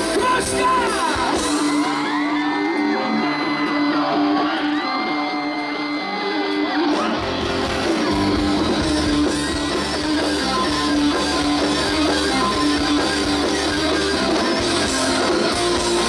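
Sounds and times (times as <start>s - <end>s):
crowd yelling and whooping: 0.0s - 16.0s
live rock band: 0.0s - 16.0s.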